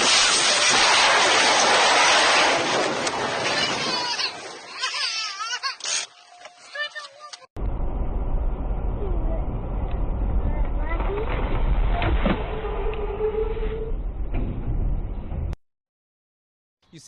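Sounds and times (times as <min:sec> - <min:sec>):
car road and engine rumble: 0:07.6 - 0:11.2.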